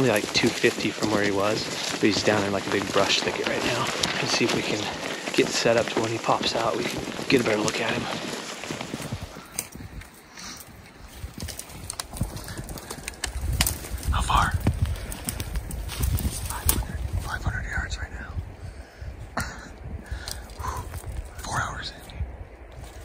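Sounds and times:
quiet whispers: 0.0 - 8.5, 16.4 - 22.3
twigs and branches snapping: 0.0 - 17.3, 20.1 - 21.4
low rumble on microphone: 0.0 - 23.0.

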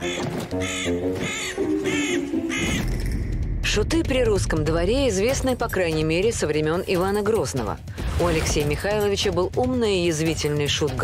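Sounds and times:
crows cawing: 0.0 - 3.1
soft background music: 0.0 - 11.0.

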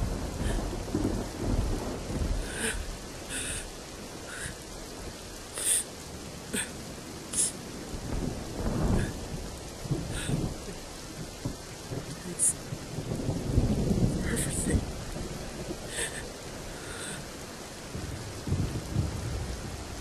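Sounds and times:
low rumble of thunder: 0.0 - 20.0
steady rain: 0.0 - 20.0.

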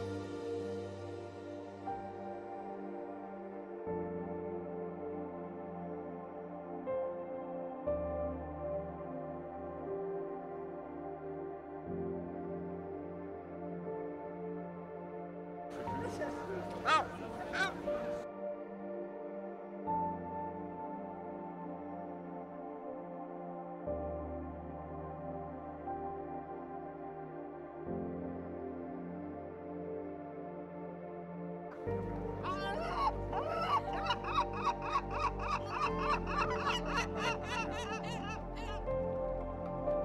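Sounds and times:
background music: 0.0 - 40.0
gull calling: 16.0 - 18.2, 32.4 - 38.9.

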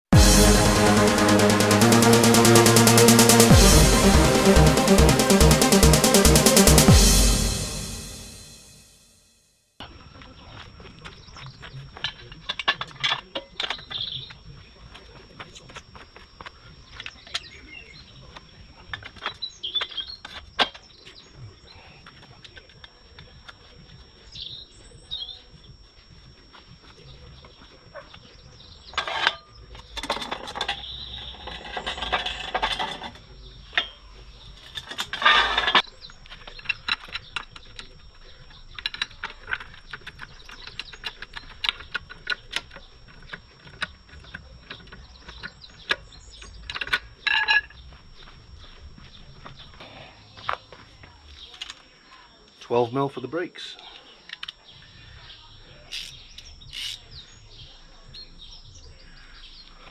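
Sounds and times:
birds chirping: 35.8 - 59.9
trolley jack being pumped: 55.9 - 57.0.

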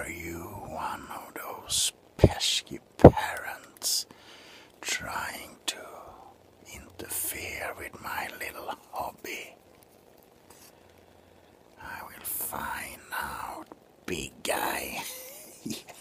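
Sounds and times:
man whispering: 0.0 - 4.2, 4.8 - 9.6, 11.7 - 15.4.

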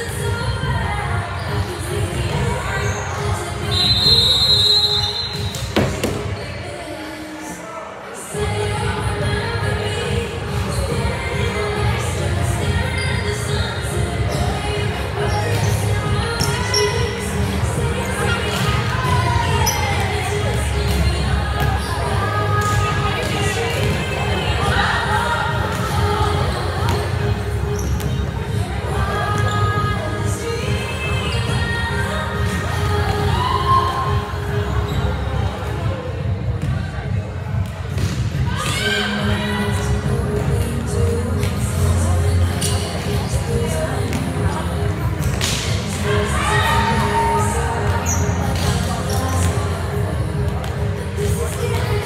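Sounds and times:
music over gym speakers: 0.0 - 52.0
voices: 0.0 - 52.0.

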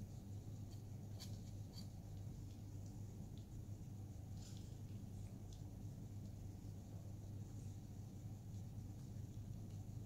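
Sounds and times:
palette knife ticking and scratching: 0.0 - 6.4
faint low hum: 0.0 - 10.0.

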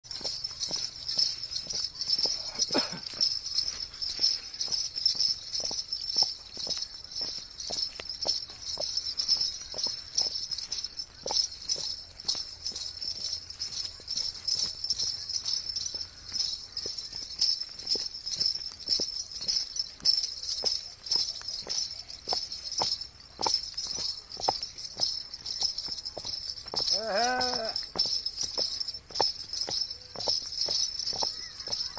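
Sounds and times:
horse hooves on gravel: 0.0 - 31.9.

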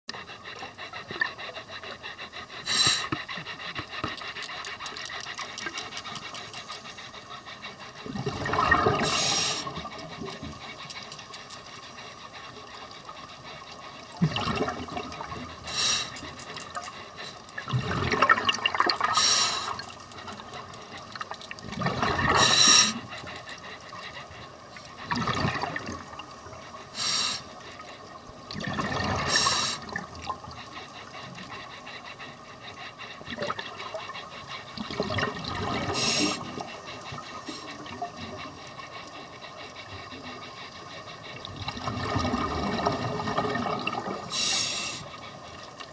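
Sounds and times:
diver breathing through regulator: 0.1 - 18.2, 18.9 - 25.6, 26.6 - 28.0, 28.8 - 45.4
bubbling gurgling exhalations: 8.0 - 10.4, 14.0 - 15.8, 17.6 - 19.9, 21.6 - 23.0, 25.0 - 26.2, 28.5 - 30.4, 34.8 - 36.7, 41.5 - 44.3.

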